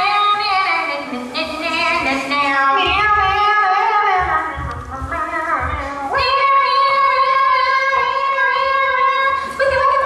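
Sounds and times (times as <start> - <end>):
woman singing a show tune: 0.0 - 10.0.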